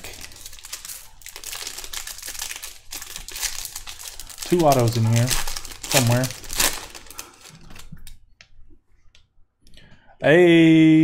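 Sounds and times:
foil wrapper rustling: 0.0s - 8.1s.

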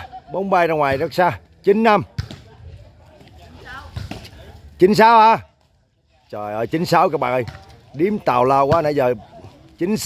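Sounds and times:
outdoor background noise: 0.0s - 10.0s
volleyball thump: 2.0s - 2.6s, 3.8s - 4.4s, 7.4s - 7.8s.

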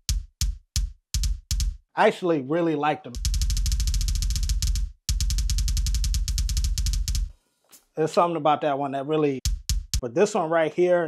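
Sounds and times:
electronic kick drum rolls: 0.0s - 1.8s, 3.2s - 7.3s, 9.4s - 10.0s.

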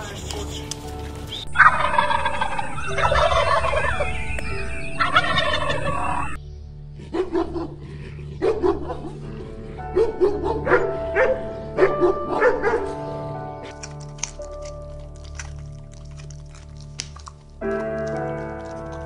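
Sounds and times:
turkeys gobbling: 0.0s - 6.4s
droning music: 0.0s - 19.0s
dog barking: 7.1s - 7.8s, 8.4s - 9.3s, 9.9s - 13.1s.

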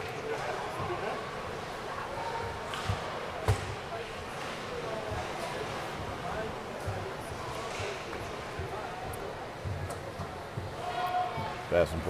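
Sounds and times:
sharp knocks of hockey play: 2.7s - 4.6s.

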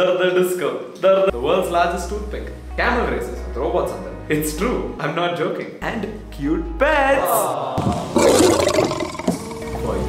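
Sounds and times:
lion roaring: 8.1s - 9.4s.

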